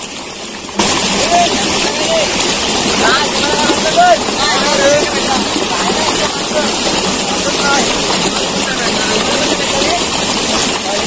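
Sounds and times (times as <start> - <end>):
running water rushing: 0.0 - 11.0.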